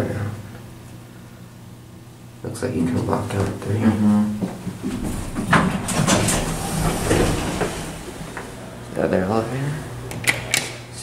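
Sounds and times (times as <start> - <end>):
elevator door sliding open: 4.8 - 10.5.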